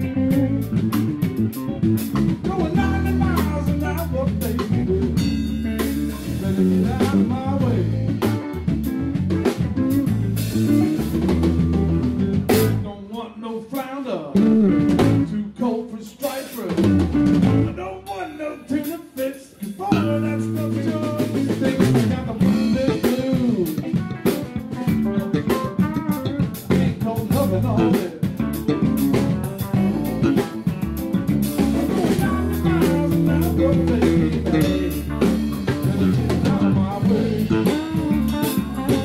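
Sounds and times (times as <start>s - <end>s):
drum kit: 0.0s - 13.1s, 14.3s - 15.4s, 16.2s - 39.0s
electric guitar: 0.0s - 13.1s, 14.3s - 15.6s, 16.7s - 39.0s
bass guitar: 0.0s - 13.4s, 14.2s - 39.0s.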